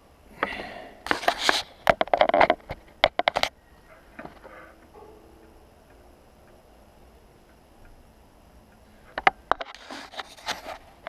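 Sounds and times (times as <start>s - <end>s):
fingers clicking and rubbing on camera: 1.1s - 3.6s.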